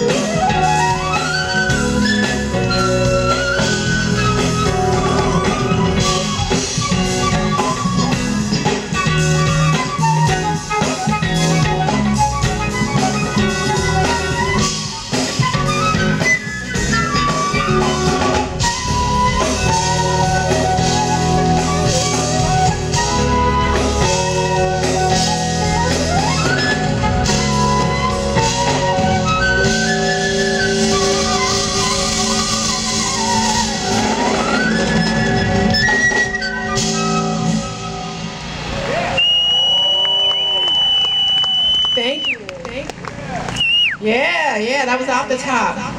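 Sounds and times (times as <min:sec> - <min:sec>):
flute melody: 0:00.0 - 0:42.4
jazz band keyboards bass and drums: 0:00.0 - 0:45.9.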